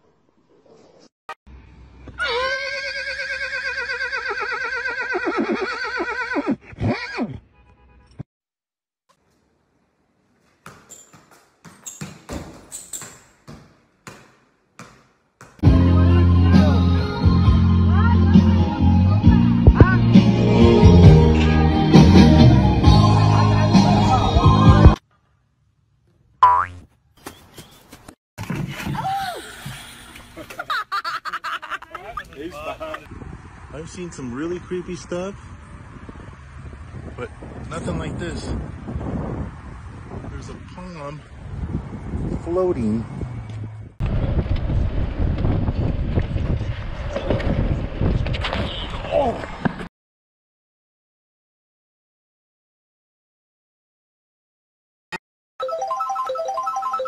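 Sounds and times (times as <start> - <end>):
cartoon boing sound effect: 26.4 - 26.8.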